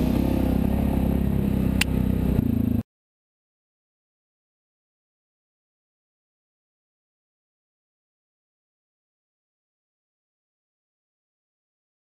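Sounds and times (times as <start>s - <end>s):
atv engine running: 0.0s - 2.8s.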